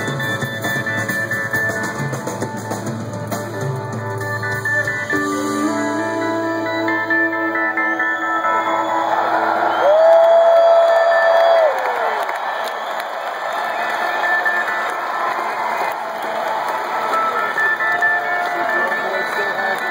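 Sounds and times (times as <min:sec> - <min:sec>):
crowd cheering and whistling: 0:00.0 - 0:02.2, 0:07.1 - 0:19.9.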